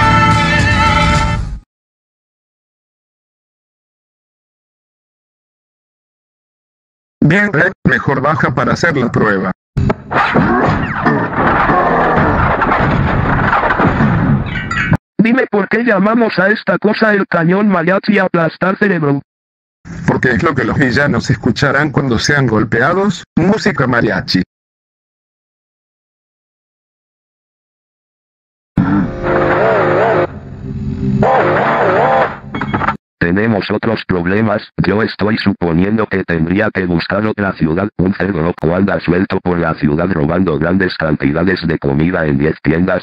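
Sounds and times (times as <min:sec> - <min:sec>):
music: 0:00.0 - 0:01.6
cartoon cannon blast: 0:09.8 - 0:14.6
cartoon sound effects: 0:10.1 - 0:12.5, 0:28.8 - 0:30.4, 0:31.2 - 0:32.4.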